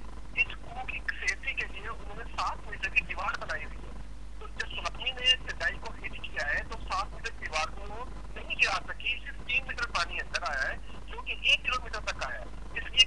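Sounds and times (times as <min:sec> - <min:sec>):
person speaking over a telephone: 0:00.4 - 0:13.0.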